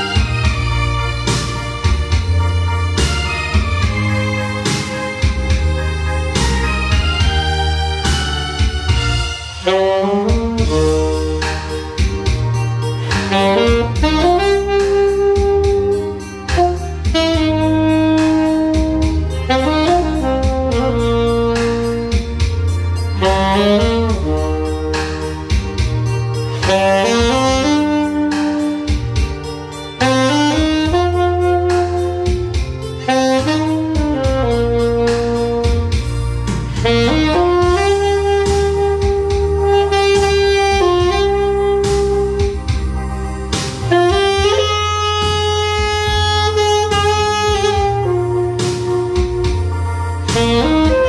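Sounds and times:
bass and drum beat: 0.0s - 51.0s
saxophone slow melody: 0.0s - 51.0s.

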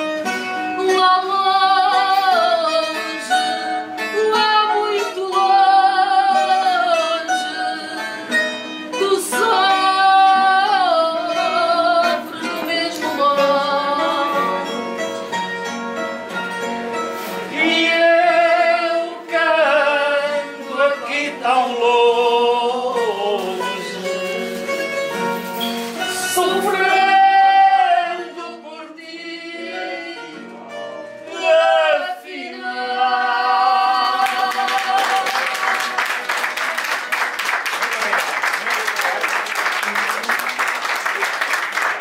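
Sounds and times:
guitar accompaniment: 0.0s - 42.0s
woman singing with vibrato: 0.7s - 14.8s, 17.5s - 24.0s, 26.0s - 30.4s, 31.3s - 36.1s.

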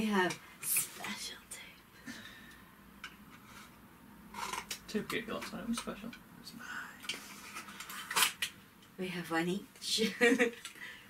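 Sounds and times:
faint breathy whispering: 0.8s - 2.3s, 6.5s - 7.1s.

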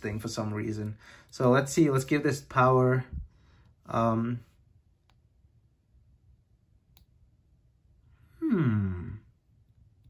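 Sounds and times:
man's wordless vocal sound: 8.4s - 9.3s.

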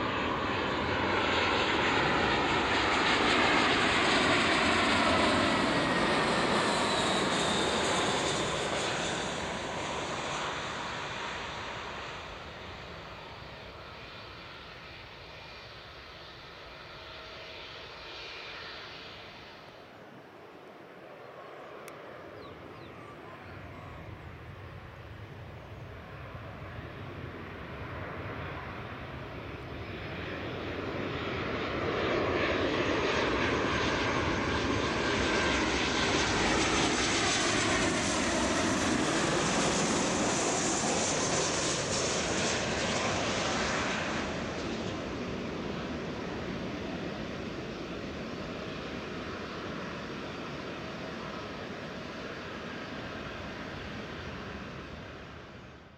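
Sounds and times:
jet engines of passing aircraft: 0.0s - 55.9s.

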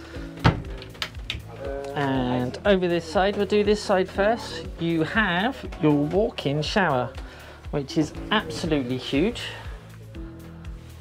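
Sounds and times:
background music with steady beat: 0.0s - 11.0s.

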